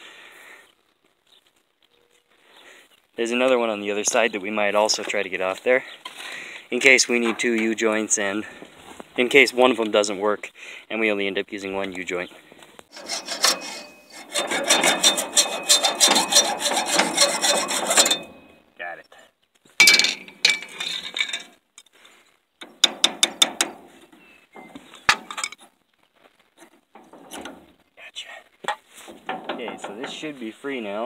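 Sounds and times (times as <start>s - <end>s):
hacksaw cutting metal: 12.9s - 18.6s, 22.6s - 23.8s.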